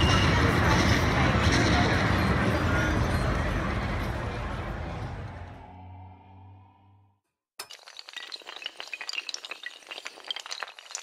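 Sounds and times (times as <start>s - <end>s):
glassy pieces clinking and clattering: 7.6s - 11.0s.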